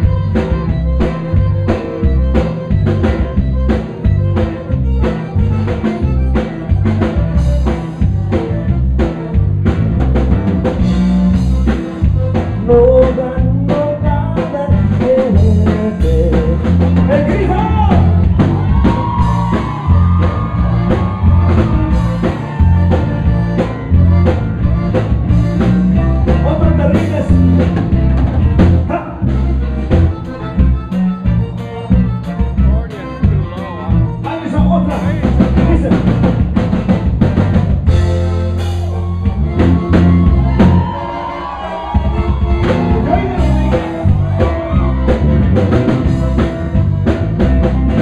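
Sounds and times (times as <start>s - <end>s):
button accordion melody: 0.0s - 48.0s
drum kit: 0.0s - 48.0s
electric guitar: 0.0s - 48.0s
congas: 34.0s - 48.0s.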